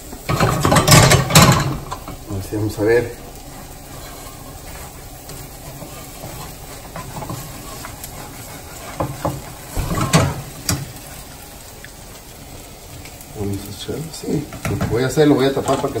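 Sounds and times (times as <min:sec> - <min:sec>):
omelette hissing in skillet: 0:00.0 - 0:16.0
spatula scraping a pan: 0:03.3 - 0:11.3.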